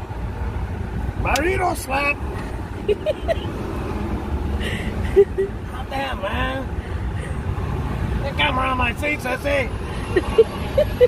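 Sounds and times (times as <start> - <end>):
car cabin road rumble: 0.0 - 11.0.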